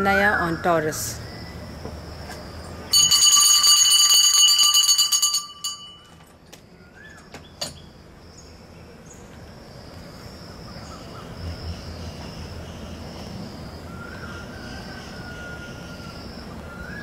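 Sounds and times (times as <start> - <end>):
high multi-toned bell ringing: 2.9 - 6.2.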